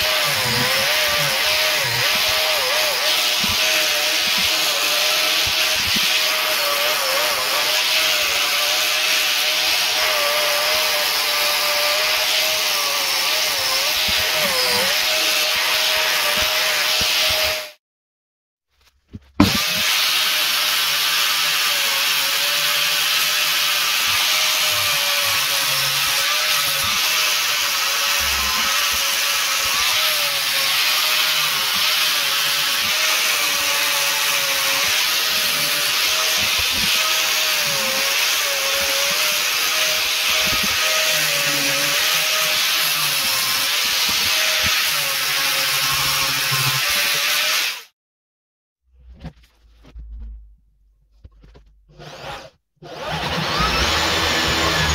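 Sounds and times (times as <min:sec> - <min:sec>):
angle grinder sanding wood: 0:00.0 - 0:17.8, 0:19.4 - 0:47.9, 0:51.9 - 0:54.9.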